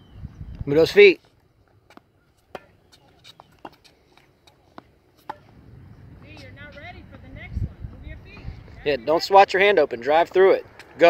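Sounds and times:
tennis balls struck and bouncing: 0:01.9 - 0:06.6.

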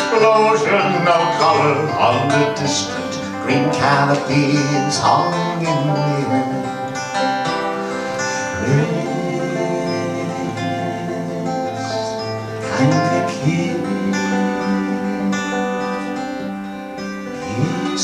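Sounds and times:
acoustic folk band playing: 0:00.0 - 0:18.0.

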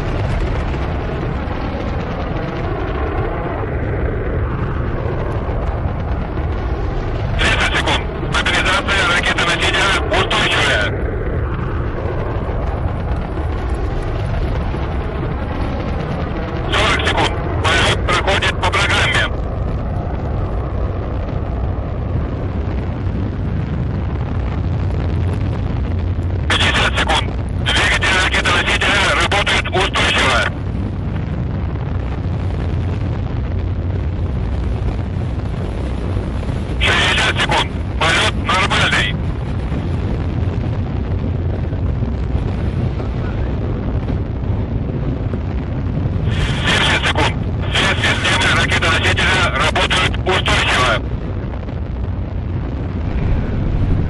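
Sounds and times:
deep rumble of rocket engines: 0:00.0 - 0:54.0
radio voice calls: 0:07.3 - 0:11.2, 0:16.6 - 0:19.4, 0:26.4 - 0:30.6, 0:36.8 - 0:39.3, 0:46.2 - 0:51.3.

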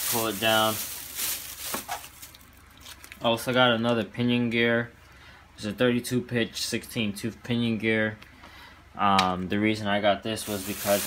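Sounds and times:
plastic bag crinkling: 0:00.0 - 0:03.4, 0:10.4 - 0:11.0.

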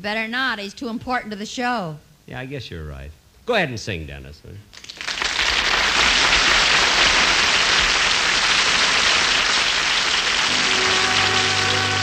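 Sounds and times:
audience applauding: 0:04.8 - 0:12.0
orchestra with brass playing: 0:10.5 - 0:12.0.

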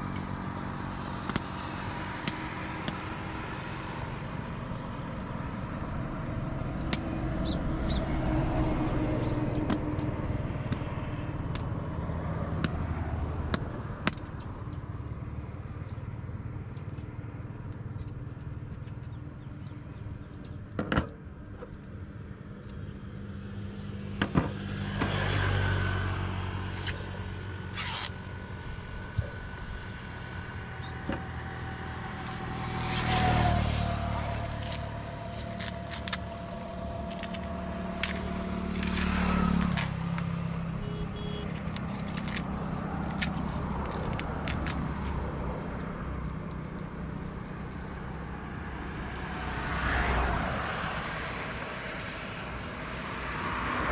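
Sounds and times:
vehicles passing on highway: 0:00.0 - 0:53.9.

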